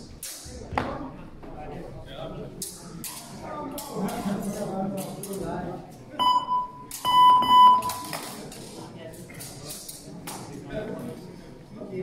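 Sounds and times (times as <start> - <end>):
high electronic beeps: 6.2 - 8.2.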